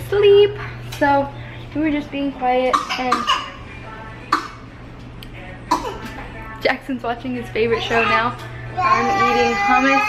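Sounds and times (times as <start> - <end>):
person coughing: 2.7 - 3.6, 5.7 - 6.1.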